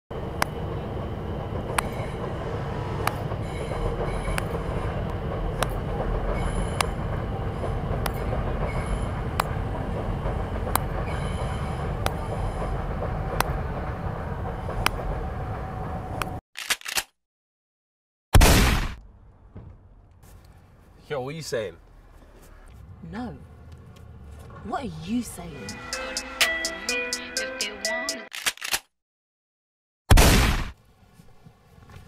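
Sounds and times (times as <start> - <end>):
steady low rumble: 0.1 - 16.4.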